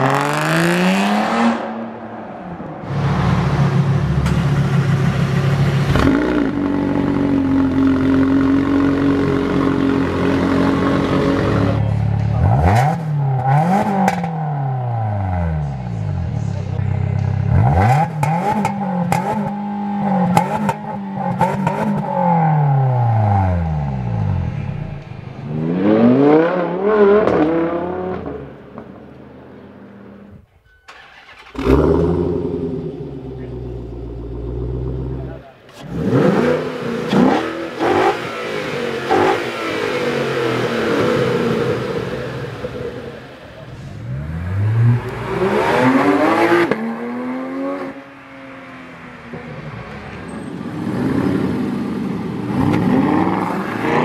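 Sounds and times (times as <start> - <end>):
car accelerating away: 0.0 - 30.3, 30.9 - 54.0
car engines revving: 0.0 - 54.0.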